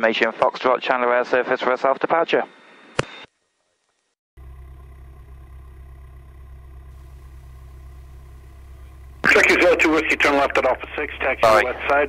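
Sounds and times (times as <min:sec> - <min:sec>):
propeller plane engine drone: 0:04.4 - 0:12.0.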